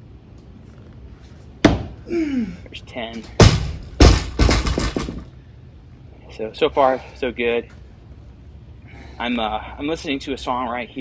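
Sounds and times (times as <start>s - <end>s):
barbell dropped on rubber mat: 1.6s - 2.0s, 3.3s - 5.3s
plates bouncing and rattling: 4.0s - 5.3s.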